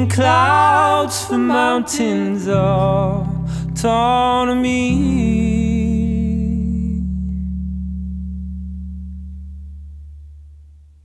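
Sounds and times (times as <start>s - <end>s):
held song chord ringing: 0.0s - 11.0s.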